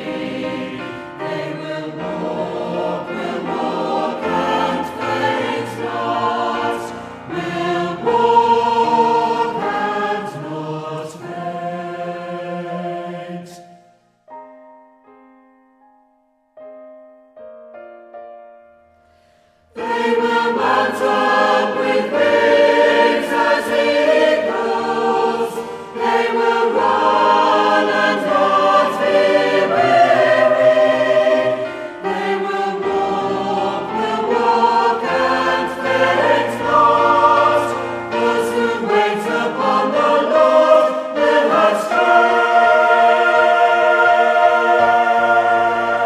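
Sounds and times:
choir singing worship song: 0:00.0 - 0:13.9, 0:19.6 - 0:46.0.

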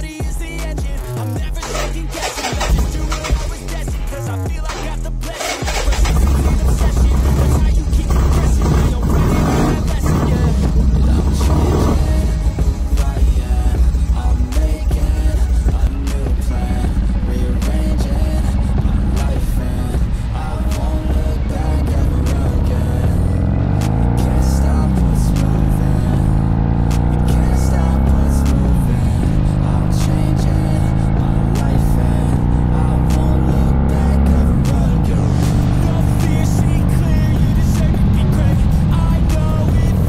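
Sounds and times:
background music: 0:00.0 - 0:40.0
motorcycle engine running: 0:00.2 - 0:40.0.

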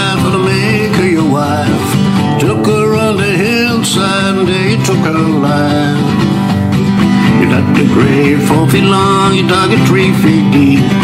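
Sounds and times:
person singing: 0:00.0 - 0:06.4, 0:07.2 - 0:11.0
acoustic guitar: 0:00.0 - 0:11.0.

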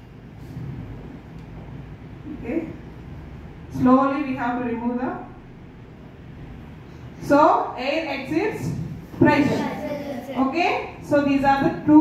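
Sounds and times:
low room noise rumble: 0:00.0 - 0:12.0.

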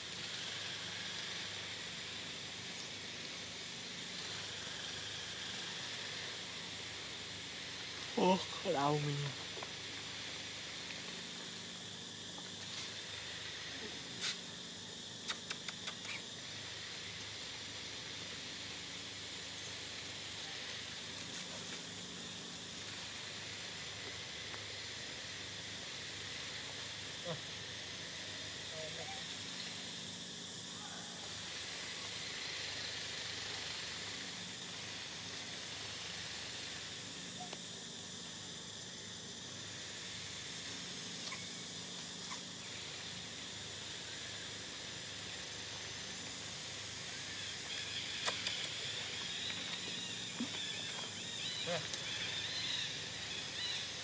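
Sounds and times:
insects chirring: 0:00.0 - 0:54.0.

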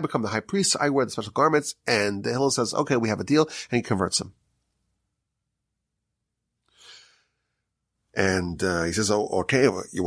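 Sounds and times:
faint breath: 0:06.6 - 0:07.7.

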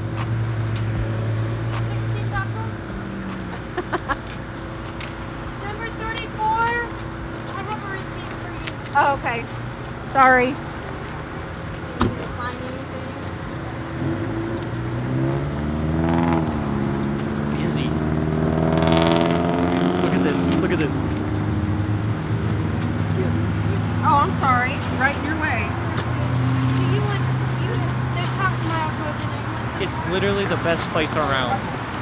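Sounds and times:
car engine running: 0:00.0 - 0:32.0
road traffic: 0:00.0 - 0:32.0.

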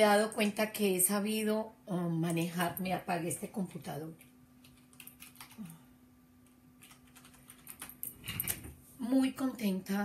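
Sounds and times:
low steady hum: 0:00.0 - 0:10.0
computer keyboard keystrokes: 0:04.6 - 0:05.8, 0:06.4 - 0:08.6.

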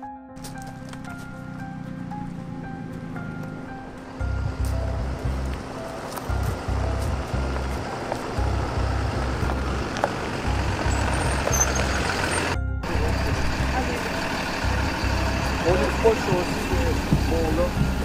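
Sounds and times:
bus engine running: 0:00.4 - 0:18.0
tyres on gravel: 0:00.4 - 0:18.0
low rumble: 0:03.6 - 0:18.0.

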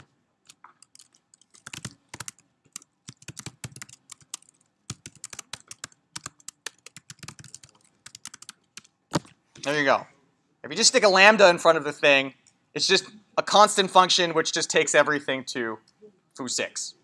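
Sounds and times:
typing on computer keyboard: 0:00.0 - 0:09.7.

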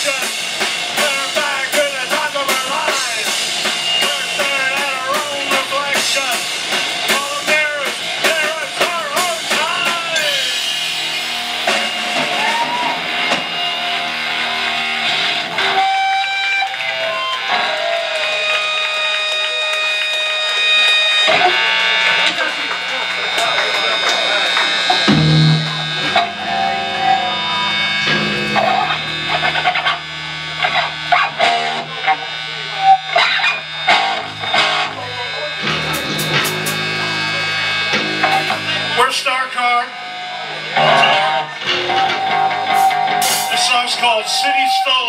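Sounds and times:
voices: 0:00.0 - 0:10.8, 0:16.8 - 0:45.0
bass guitar notes: 0:00.0 - 0:45.0
electric guitar held notes: 0:00.0 - 0:45.0
drum hits: 0:25.1 - 0:26.4.

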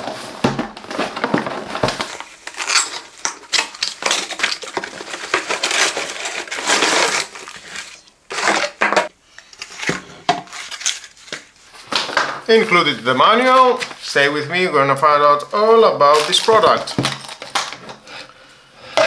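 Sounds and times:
cardboard box being unpacked: 0:00.0 - 0:08.8, 0:09.5 - 0:12.0.

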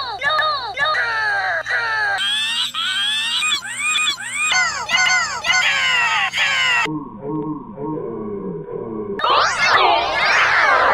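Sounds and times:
warped pitch-shifted cartoon voice: 0:00.0 - 0:10.9.

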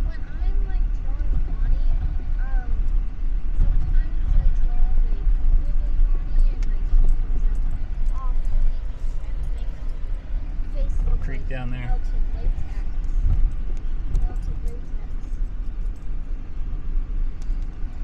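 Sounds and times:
vehicle rumbling on gravel road: 0:00.0 - 0:18.0.

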